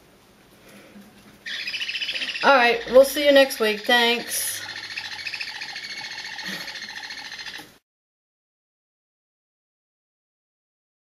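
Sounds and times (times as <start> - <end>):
room sound: 0.0 - 7.8
baby parrots chirping: 1.5 - 7.6.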